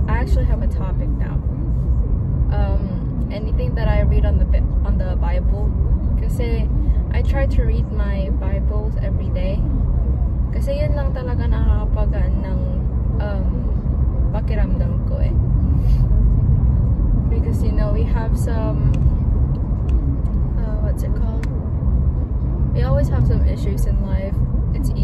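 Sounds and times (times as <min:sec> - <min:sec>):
woman talking: 0:00.0 - 0:01.5, 0:02.5 - 0:09.7, 0:10.6 - 0:15.4, 0:17.3 - 0:19.0, 0:20.5 - 0:21.6, 0:22.7 - 0:25.0
car road and engine rumble: 0:00.0 - 0:25.0.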